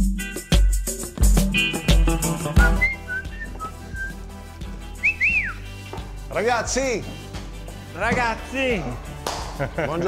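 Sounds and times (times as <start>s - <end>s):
background music with steady beat: 0.0s - 10.0s
person whistling: 2.6s - 4.2s, 5.0s - 5.8s.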